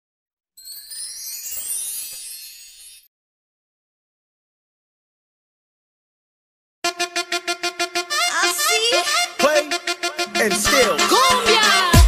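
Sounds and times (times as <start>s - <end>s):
rising chime-like tones: 0.6s - 3.1s.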